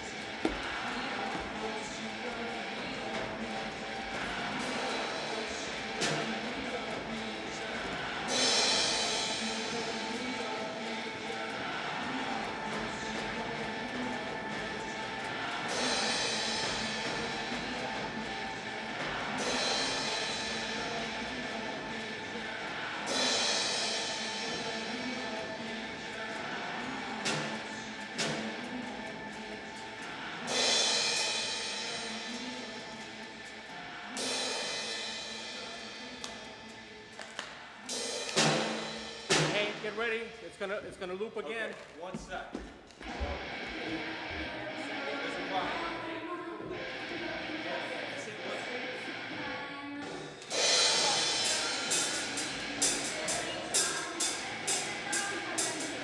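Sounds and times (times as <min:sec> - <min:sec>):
loud cymbal crash: 0:37.9 - 0:40.0, 0:50.5 - 0:56.0
heavy rock song: 0:46.6 - 0:56.0.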